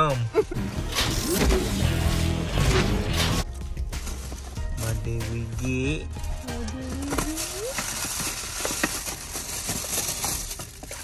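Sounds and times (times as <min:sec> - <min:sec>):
paper bag and tissue rustling: 0:06.2 - 0:11.0.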